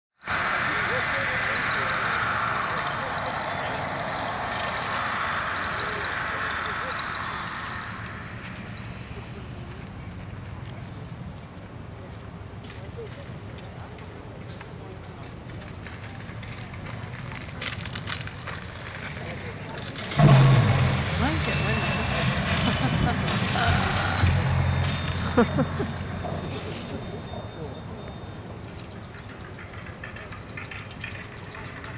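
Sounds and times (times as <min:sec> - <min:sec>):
crowd babble: 0:00.2 - 0:31.9
deep rumbling drone over loudspeakers: 0:20.0 - 0:28.2.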